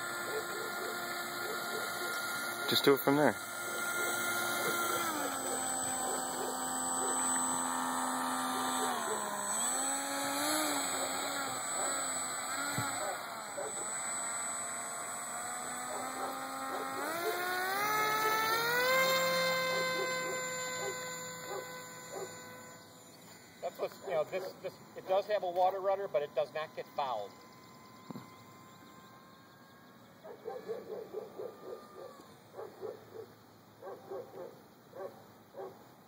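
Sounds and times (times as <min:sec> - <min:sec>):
rc plane motor whining: 0:00.0 - 0:32.9.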